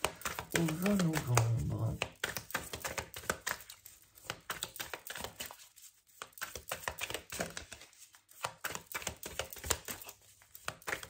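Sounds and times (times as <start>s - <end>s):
cards being shuffled by hand: 0.0s - 11.0s.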